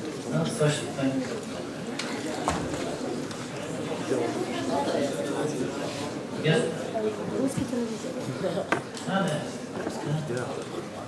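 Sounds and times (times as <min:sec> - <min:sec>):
murmur of voices: 0:00.0 - 0:11.0.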